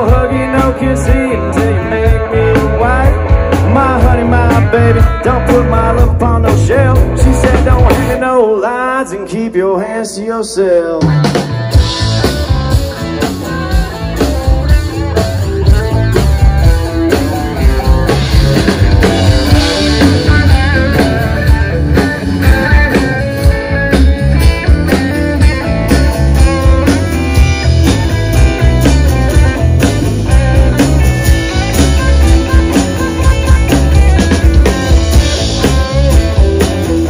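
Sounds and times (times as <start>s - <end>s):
drum kit: 0.0s - 8.4s, 10.9s - 37.0s
electric guitar lead: 0.0s - 9.5s, 10.6s - 37.0s
bass guitar: 0.0s - 37.0s.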